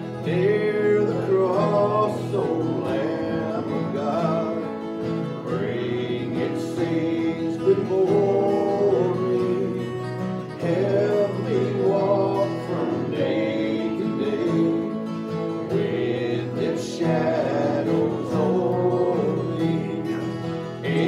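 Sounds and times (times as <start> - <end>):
man singing a hymn: 0.0 - 21.0
strummed acoustic guitar: 0.0 - 21.0.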